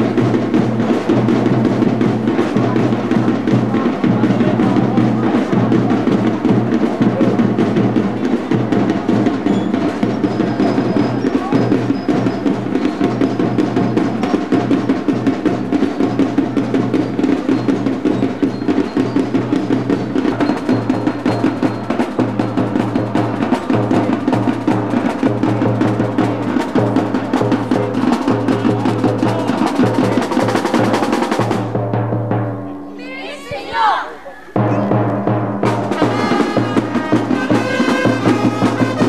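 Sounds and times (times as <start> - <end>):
fast percussive dance music: 0.0 - 31.7, 34.5 - 39.0
low drum beat: 0.0 - 32.9, 34.5 - 39.0.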